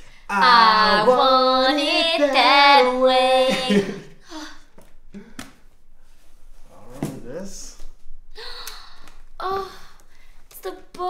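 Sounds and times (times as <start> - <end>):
person gasping: 3.7 - 5.5.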